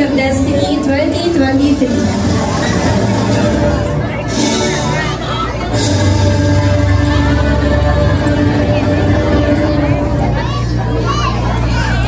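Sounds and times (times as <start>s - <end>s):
chatter of voices: 0.0s - 12.0s
children's high voices: 6.8s - 12.0s.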